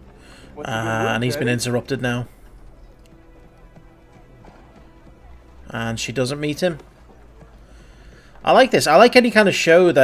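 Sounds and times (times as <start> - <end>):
soft background music: 0.0 - 10.0
horse hooves clip-clopping on dirt: 1.0 - 10.0.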